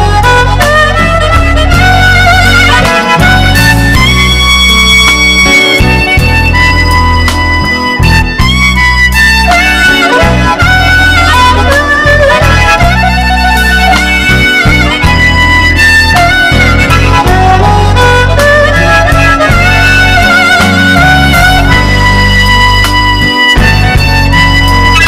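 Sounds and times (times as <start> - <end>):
bending lead melody notes: 0.0 - 25.0
steady bass line: 0.0 - 25.0.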